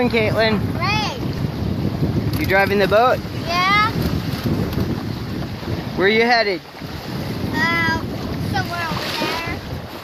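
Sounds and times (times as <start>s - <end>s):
water rushing along hulls: 0.0s - 10.0s
wind buffeting microphone: 0.0s - 10.0s.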